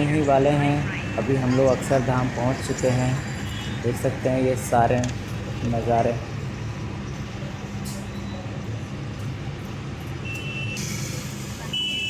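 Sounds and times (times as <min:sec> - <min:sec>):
high-pitched beep: 0:08.0 - 0:08.5.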